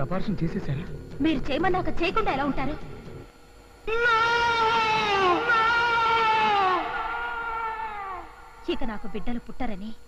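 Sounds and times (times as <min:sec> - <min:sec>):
man wailing: 0:03.9 - 0:08.4.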